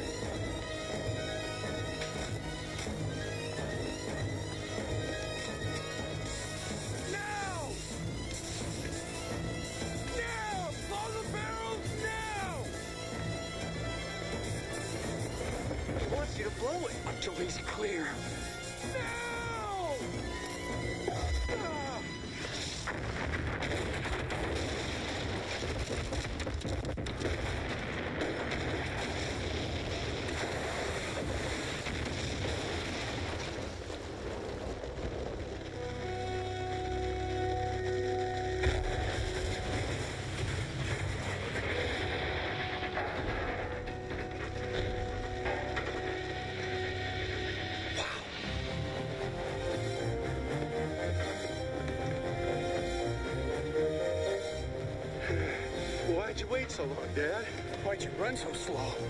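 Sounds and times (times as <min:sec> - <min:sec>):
dramatic film music: 0:00.0 - 0:59.0
explosion and fire roar: 0:13.7 - 0:58.4.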